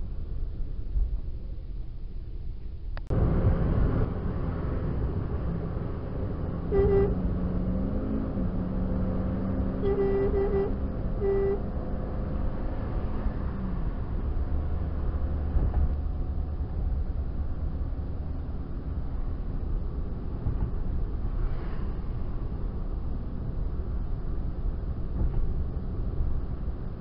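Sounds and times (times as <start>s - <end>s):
car road and engine noise: 0.0s - 27.0s
car horn short beeps: 6.7s - 7.2s, 9.8s - 11.6s.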